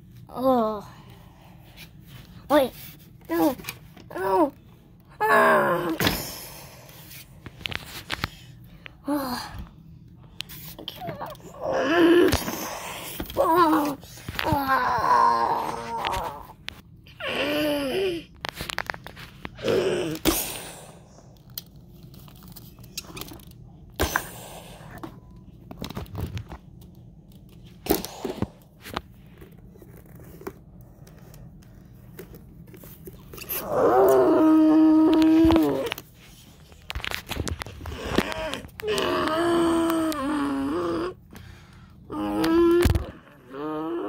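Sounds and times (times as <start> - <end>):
person moaning: 4.1 - 6.6, 11.0 - 18.4, 19.6 - 21.0, 33.4 - 36.0, 37.8 - 41.3, 42.0 - 44.0.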